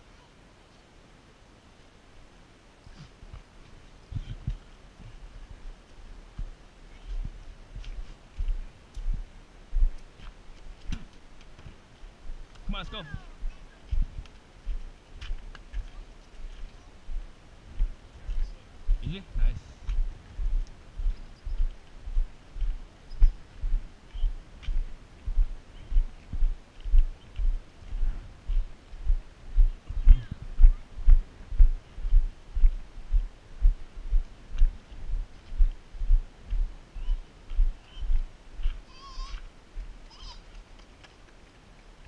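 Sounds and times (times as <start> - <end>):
walking footsteps: 2.9 - 42.0.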